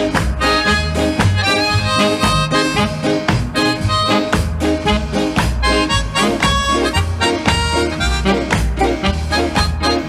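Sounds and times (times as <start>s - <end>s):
instrumental ska music: 0.0s - 10.0s.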